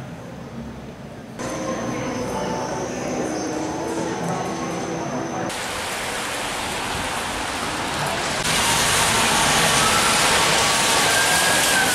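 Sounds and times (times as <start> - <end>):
car tyres on wet street: 5.5 - 11.9
rain hiss: 5.5 - 11.9.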